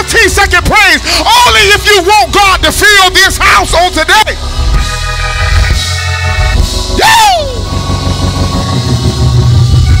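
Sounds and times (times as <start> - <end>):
gospel organ music: 0.0 - 10.0
heavy bass and drums: 0.0 - 10.0.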